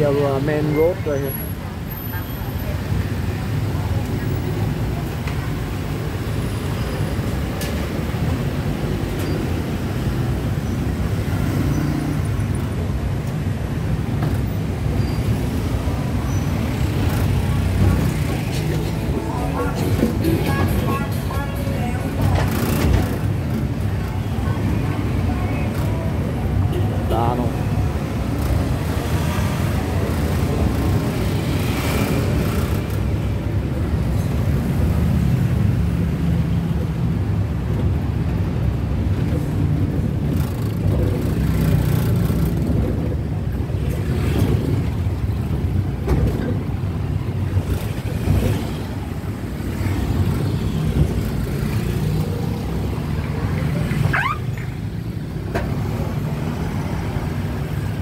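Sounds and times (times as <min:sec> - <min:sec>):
engine and road rumble: 0:00.0 - 0:58.0
street traffic: 0:00.0 - 0:58.0.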